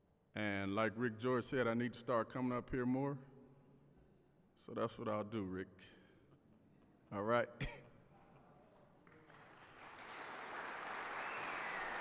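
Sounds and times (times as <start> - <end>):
audience applause: 9.0 - 12.0
falling whistle: 11.1 - 12.0.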